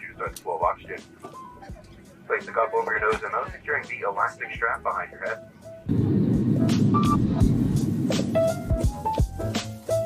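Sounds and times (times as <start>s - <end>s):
airliner engines rumbling: 0.0s - 9.6s.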